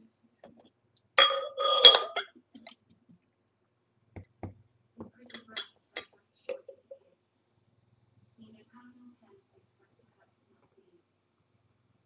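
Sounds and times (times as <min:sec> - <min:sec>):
glassware clinking: 0:01.2 - 0:02.4.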